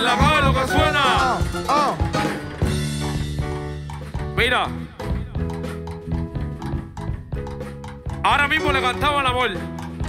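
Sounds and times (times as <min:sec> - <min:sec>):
man calling out: 0:00.0 - 0:02.1
light percussion ticks: 0:03.9 - 0:10.0.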